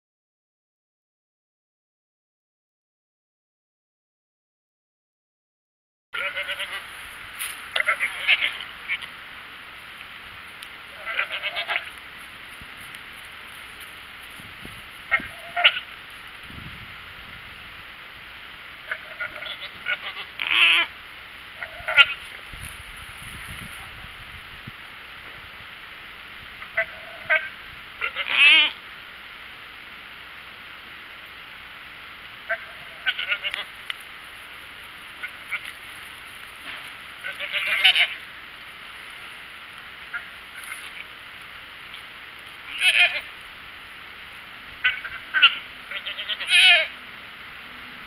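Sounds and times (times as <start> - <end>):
goat bleating: 6.2 - 7.0, 7.7 - 9.1, 10.9 - 12.0, 15.1 - 15.9, 18.9 - 20.9, 21.6 - 22.3, 26.6 - 28.8, 32.5 - 33.8, 35.2 - 35.8, 37.2 - 38.2, 42.6 - 43.4, 44.8 - 47.0.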